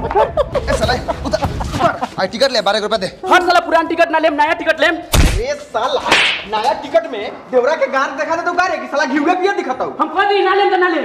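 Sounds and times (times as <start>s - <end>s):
loud smack with deep thump: 5.1s - 5.5s.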